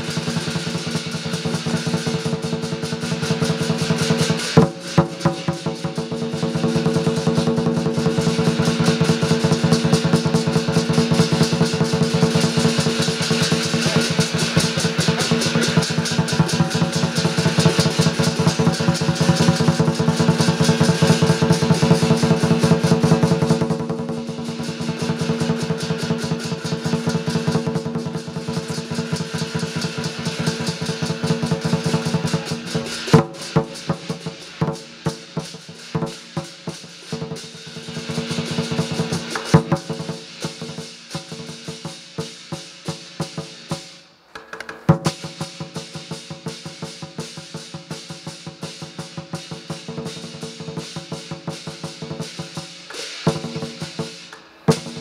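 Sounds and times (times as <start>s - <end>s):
drum beaten fast: 0.0s - 44.0s, 44.7s - 55.0s
clashing cymbals: 0.0s - 55.0s.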